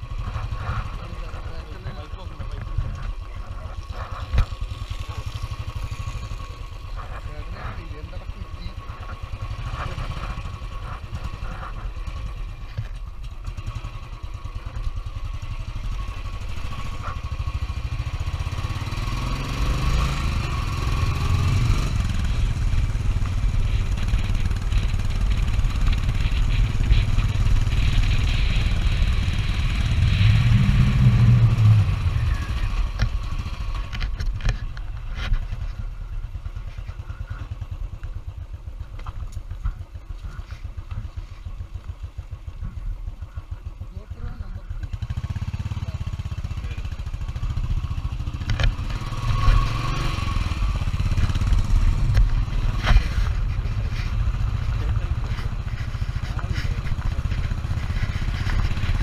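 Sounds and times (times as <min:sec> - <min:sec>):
motorcycle engine running: 0:00.0 - 0:59.0.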